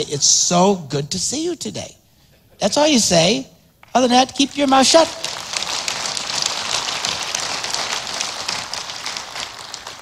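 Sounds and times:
congregation applauding: 0:03.9 - 0:10.0.

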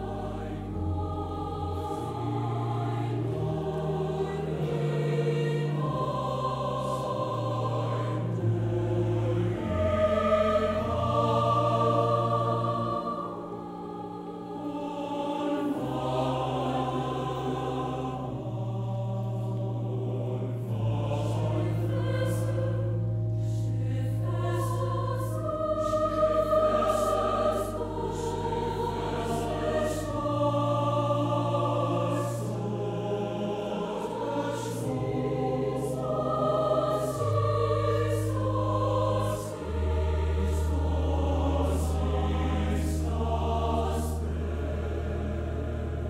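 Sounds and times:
choir singing sustained chords: 0:00.0 - 0:46.0.

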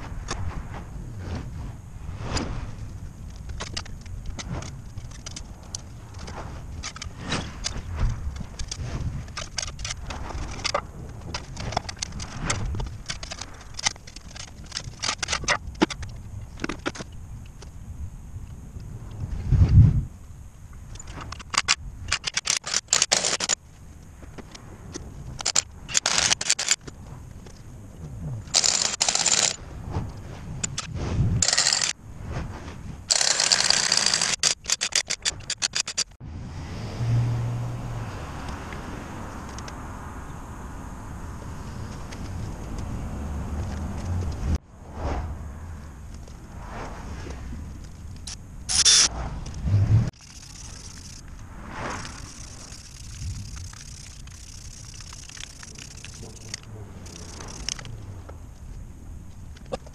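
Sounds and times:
rapid metallic clicking: 0:20.9 - 0:23.6, 0:25.4 - 0:26.9, 0:28.4 - 0:29.6, 0:30.6 - 0:32.0, 0:33.1 - 0:36.2, 0:50.1 - 0:57.9.

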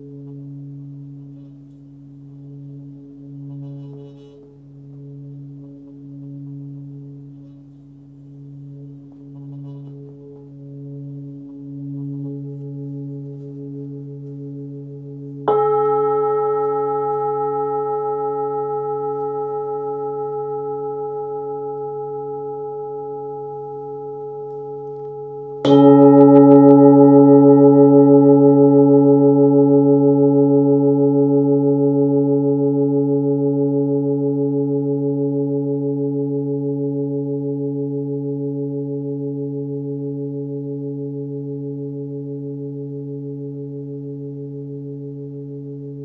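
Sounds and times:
singing bowl struck and ringing: 0:08.5 - 0:46.0.

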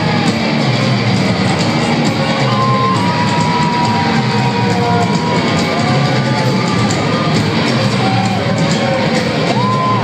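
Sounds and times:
crowd cheering: 0:00.0 - 0:10.0
loud rock music: 0:00.0 - 0:10.0.

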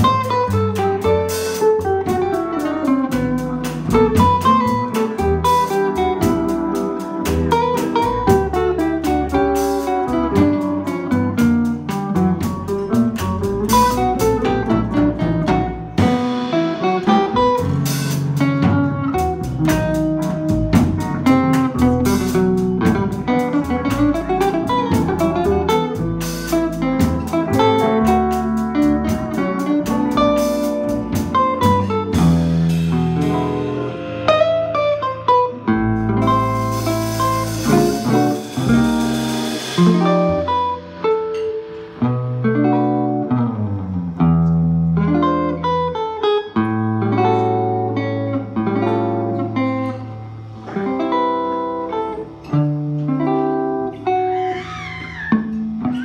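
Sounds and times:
drums: 0:00.0 - 0:56.0
electric guitars: 0:00.0 - 0:56.0
pedal steel guitar: 0:00.0 - 0:56.0
upright bass: 0:00.0 - 0:56.0.

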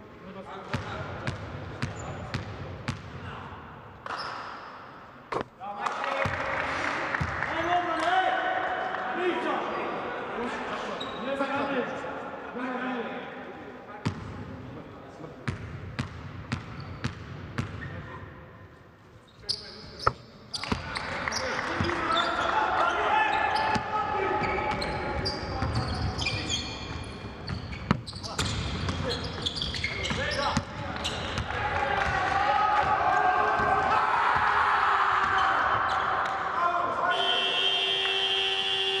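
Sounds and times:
arena buzzer: 0:37.1 - 0:39.0.

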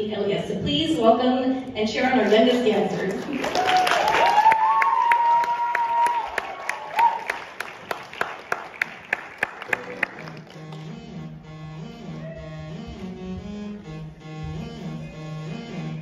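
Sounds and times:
audience applause: 0:03.0 - 0:10.9
high cheer: 0:03.3 - 0:08.8.

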